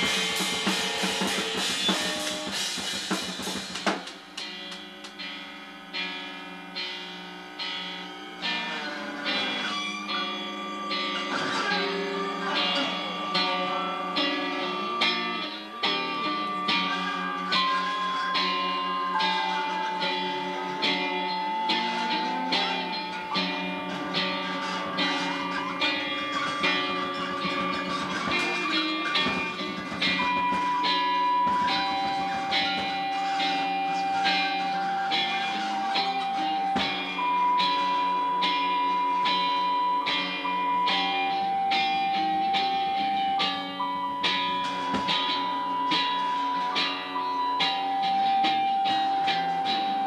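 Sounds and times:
synthesizer sustained notes: 5.2 - 50.0
long held pure tone: 5.4 - 50.0.

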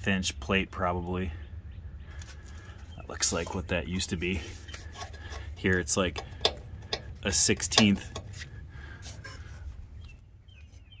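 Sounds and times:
steady low rumble: 0.0 - 10.5.

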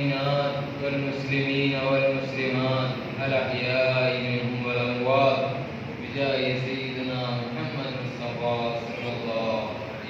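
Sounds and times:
man chanting over loudspeaker: 0.0 - 10.0.

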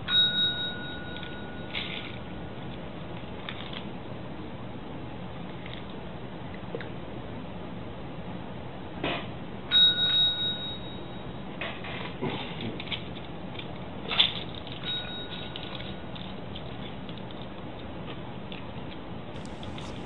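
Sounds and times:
desk service bell ringing: 0.0 - 1.8, 9.7 - 11.2, 14.9 - 15.6.

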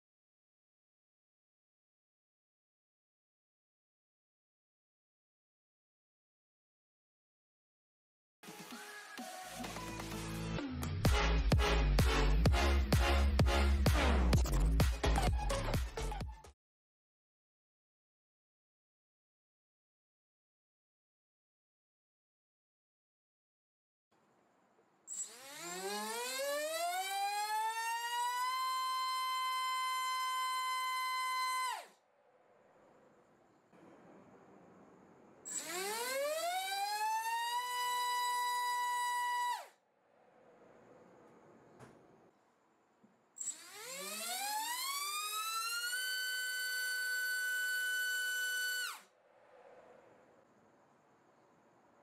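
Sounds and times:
electric motor whine: 25.1 - 31.9, 35.5 - 39.7, 43.4 - 49.0.

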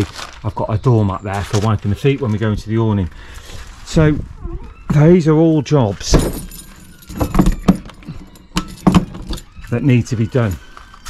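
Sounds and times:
keys jangling: 6.1 - 9.7.

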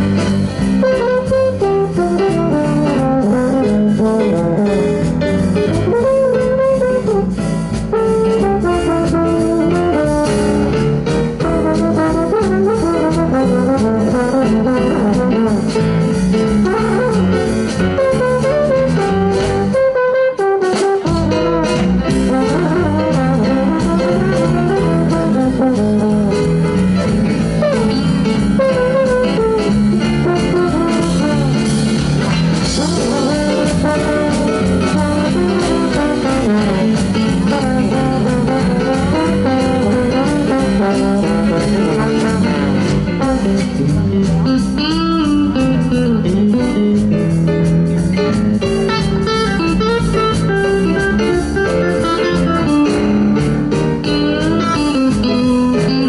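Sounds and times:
trombone lead: 0.0 - 46.9, 48.2 - 56.0
jazz band playing: 0.0 - 56.0.

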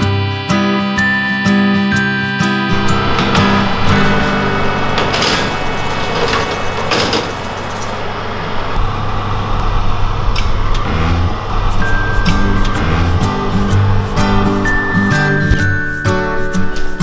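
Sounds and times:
metal tray scraping on rack: 2.7 - 8.0.

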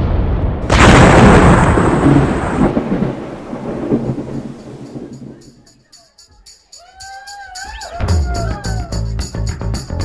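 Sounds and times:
loud boom with deep rumble: 0.0 - 5.3.

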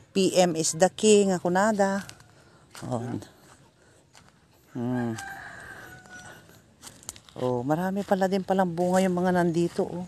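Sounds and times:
rooster crowing faintly: 4.7 - 6.6.

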